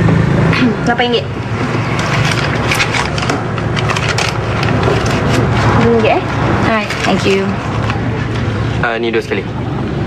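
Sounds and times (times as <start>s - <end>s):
crackling and clicking: 1.4s - 8.5s.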